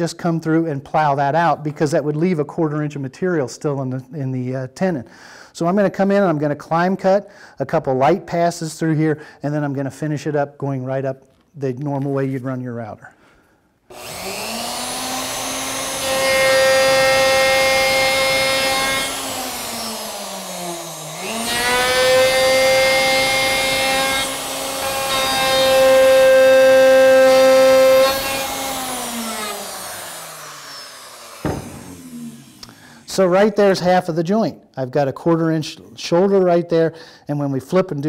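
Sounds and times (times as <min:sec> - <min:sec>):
router whining: 0:13.9 - 0:33.5.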